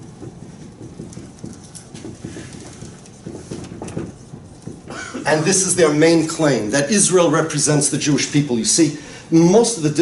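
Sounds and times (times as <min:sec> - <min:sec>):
marker writing on whiteboard: 0:00.0 - 0:06.7.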